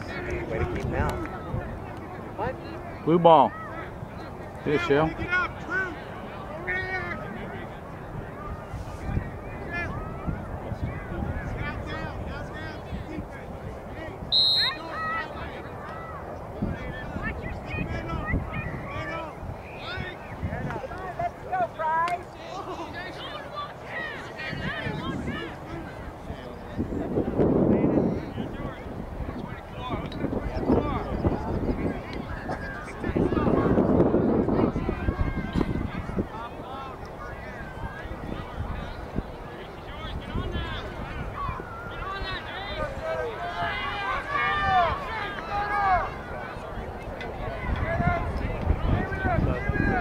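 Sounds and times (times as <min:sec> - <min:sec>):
voices shouting and calling out: 0:00.0 - 0:50.0.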